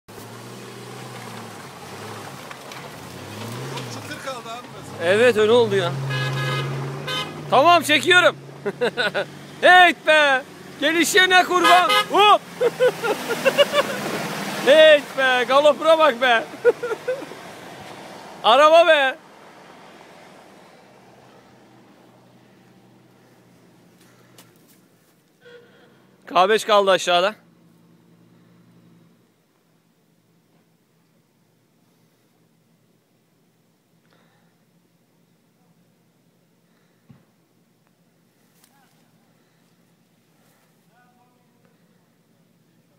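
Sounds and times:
distant vehicle engine humming: 0.1 - 26.3.

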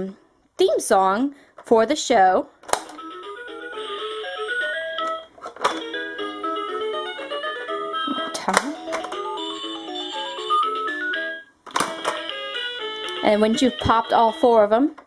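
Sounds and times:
toy beeping melody: 2.9 - 14.9.

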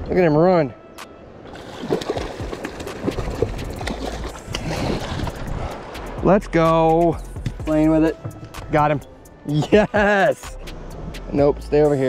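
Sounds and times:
water splashing: 1.4 - 6.2
fish thrashing in water: 1.5 - 5.5.

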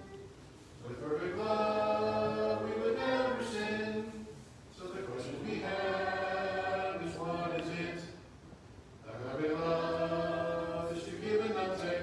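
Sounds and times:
group singing in unison: 0.8 - 8.2, 9.1 - 12.0.

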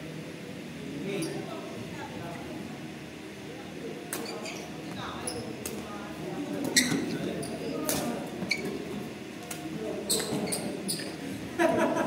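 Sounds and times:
sneakers squeaking on court floor: 4.1 - 5.6, 6.6 - 9.0, 10.0 - 11.2.

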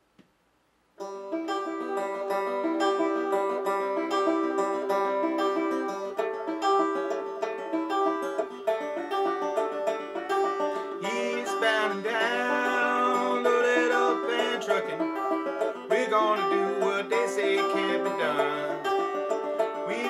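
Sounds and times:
banjo picking: 1.0 - 20.0.

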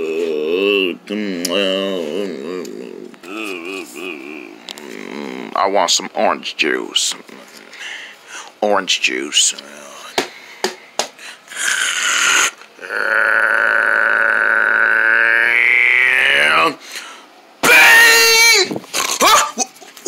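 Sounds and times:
man growling vocal effect: 0.0 - 5.8, 11.5 - 16.8
vocal crashing burst: 11.5 - 16.8.

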